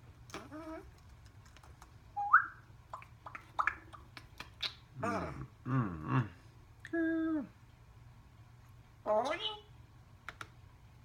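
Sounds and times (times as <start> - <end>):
parrot whistling: 2.2 - 2.6.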